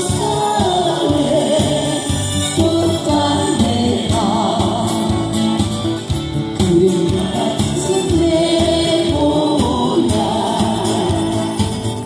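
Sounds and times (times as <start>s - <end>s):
group of people singing: 0.0s - 5.3s, 6.7s - 12.0s
strummed acoustic guitar: 0.0s - 12.0s.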